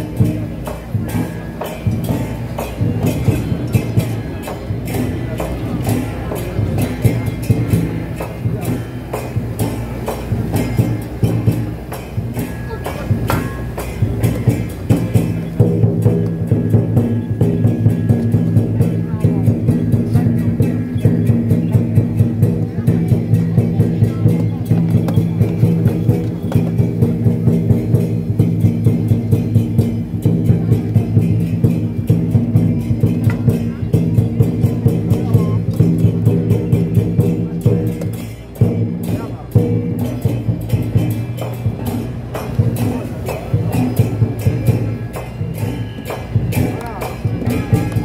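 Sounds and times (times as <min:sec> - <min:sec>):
percussion band drums and cymbals: 0:00.0 - 0:48.0.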